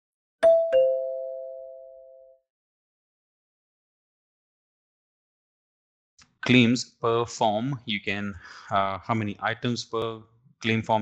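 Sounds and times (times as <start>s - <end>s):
two-note ding-dong chime: 0.4s - 2.4s.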